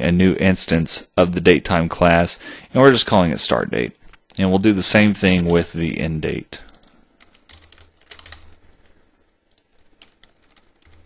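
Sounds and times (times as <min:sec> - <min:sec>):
soft keyboard typing: 0:06.6 - 0:11.0.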